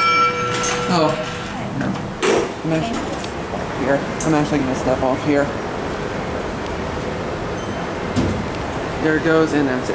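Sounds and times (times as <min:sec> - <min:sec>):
elevator doors sliding shut: 0:00.0 - 0:03.2
doors thudding together: 0:08.1 - 0:08.5.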